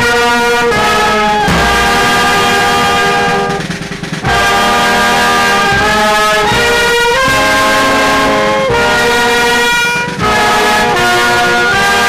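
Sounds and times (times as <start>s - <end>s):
brass band sustained chord: 1.5s - 3.9s.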